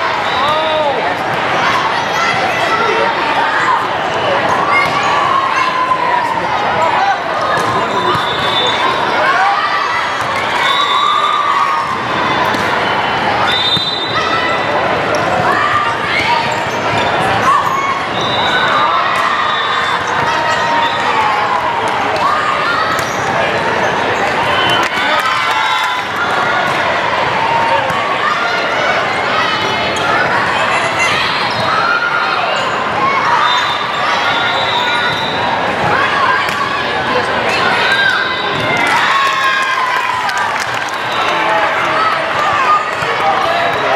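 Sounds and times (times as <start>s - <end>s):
constant hall noise: 0.0s - 43.9s
hubbub of voices: 0.0s - 43.9s
players shouting calls: 0.0s - 43.9s.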